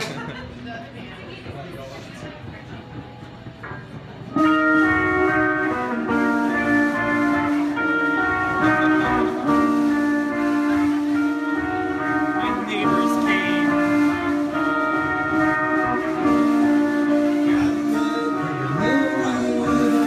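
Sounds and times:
live band playing amplified chords: 0:02.2 - 0:20.0
wavering higher melodic line: 0:04.4 - 0:20.0.

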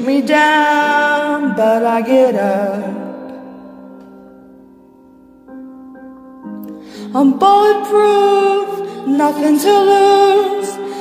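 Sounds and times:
held chord: 0:02.4 - 0:11.0.

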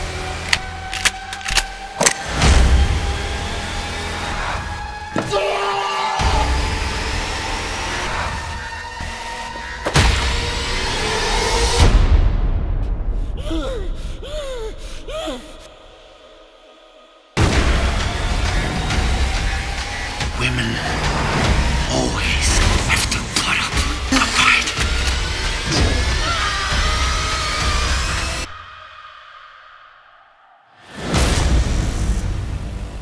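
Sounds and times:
woman gasping: 0:13.4 - 0:15.7.

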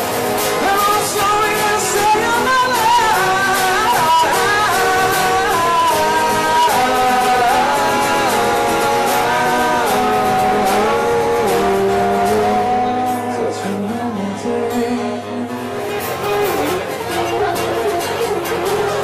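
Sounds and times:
acoustic guitars strumming: 0:00.0 - 0:19.0
person singing long notes: 0:00.5 - 0:19.0.

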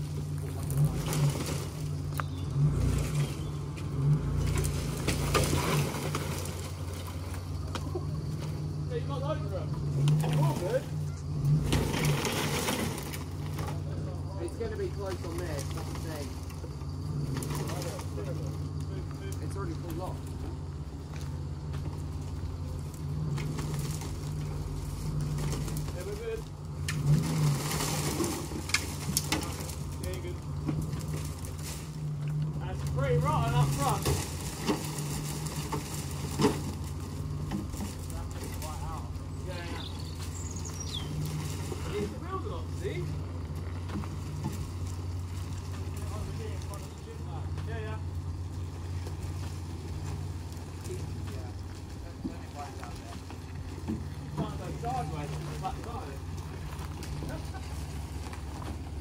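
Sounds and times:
engine humming steadily: 0:00.0 - 0:59.0
knocks and rustles: 0:23.2 - 0:39.2, 0:48.7 - 0:59.0.

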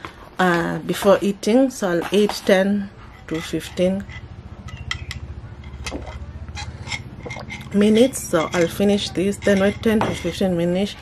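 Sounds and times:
low steady hum: 0:00.0 - 0:11.0
glass jar clinking: 0:03.3 - 0:10.5.

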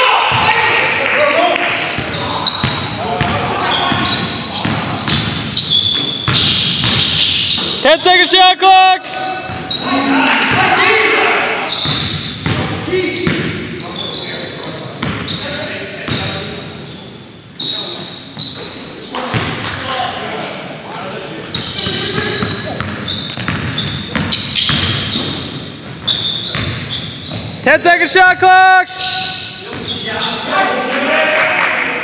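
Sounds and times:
sneakers squeaking: 0:01.7 - 0:07.9, 0:09.0 - 0:10.8, 0:11.5 - 0:19.8, 0:21.3 - 0:28.0, 0:28.9 - 0:31.1.

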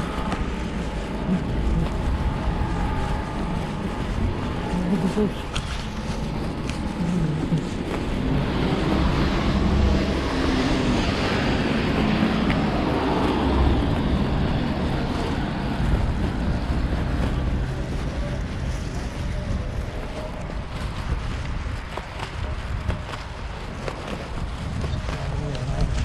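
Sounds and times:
tyres hissing on wet road: 0:00.0 - 0:19.5
wind buffeting microphone: 0:00.0 - 0:26.0.

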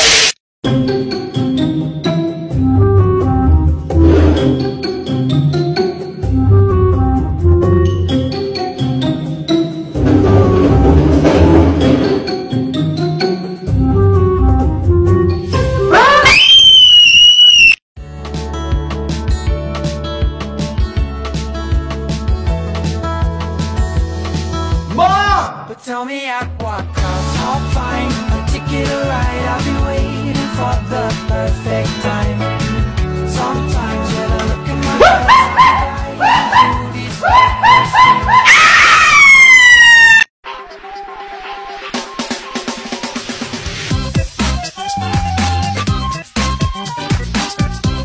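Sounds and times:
high-pitched scream: 0:15.9 - 0:17.8, 0:35.0 - 0:40.3.

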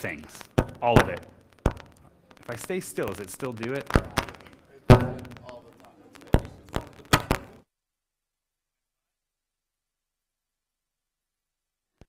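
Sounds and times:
microphone thuds and knocks: 0:00.5 - 0:02.0, 0:03.9 - 0:05.5.

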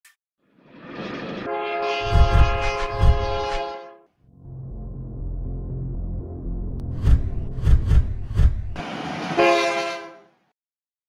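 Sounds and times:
train rushing rumble: 0:00.7 - 0:03.6, 0:06.9 - 0:10.2
train horn chord: 0:01.5 - 0:05.8, 0:09.3 - 0:10.5
heavy low thumps: 0:02.0 - 0:03.6, 0:04.4 - 0:08.8.

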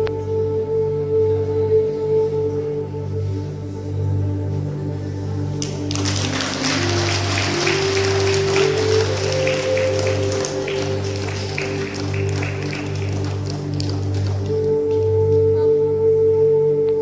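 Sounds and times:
slow calm background music: 0:00.0 - 0:17.0
audience applause: 0:05.6 - 0:14.7.

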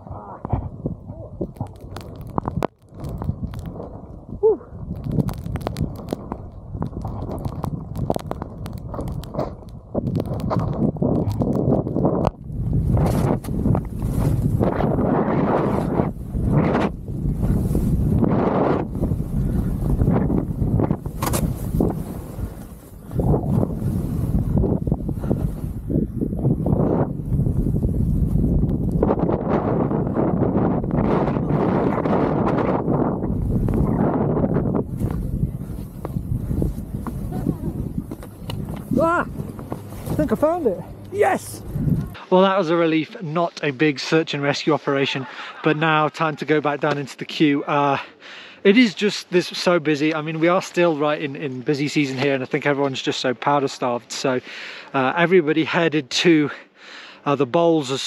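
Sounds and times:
wind rushing over microphone: 0:00.0 - 0:42.2.

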